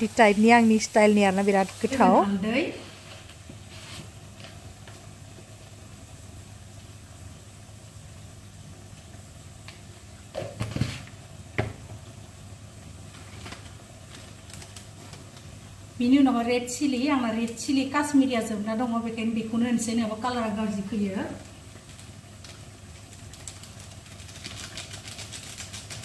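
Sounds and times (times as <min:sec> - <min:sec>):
low hum with faint hiss: 0:00.0 - 0:26.0.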